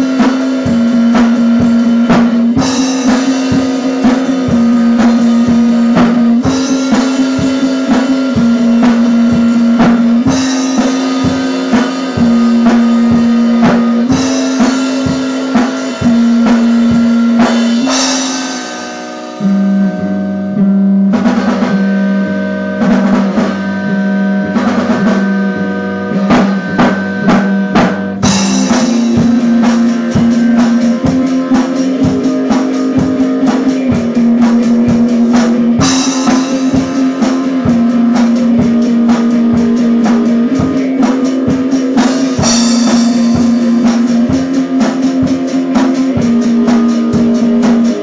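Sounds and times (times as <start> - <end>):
bass notes: 0.0 - 48.0
drum kit playing: 0.0 - 48.0
guitar chords: 0.0 - 48.0.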